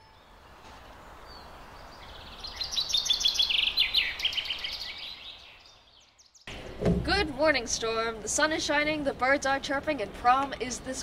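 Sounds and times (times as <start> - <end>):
songbird chirping: 0.0 - 8.8
faint outdoor hiss: 0.0 - 11.0.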